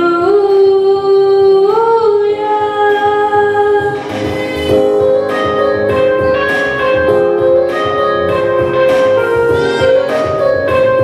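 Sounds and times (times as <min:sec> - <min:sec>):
boy singing a slow song: 0:00.0 - 0:04.1.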